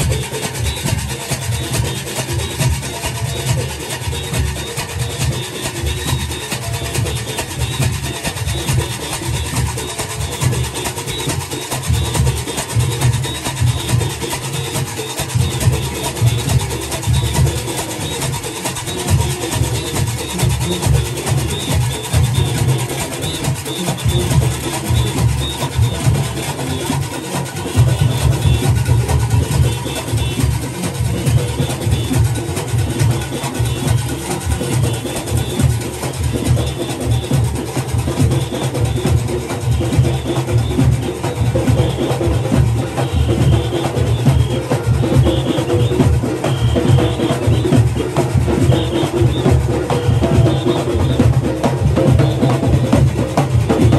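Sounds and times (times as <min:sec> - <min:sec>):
cowbells clanging: 0:00.0 - 0:53.9
drums pounding: 0:00.0 - 0:53.9.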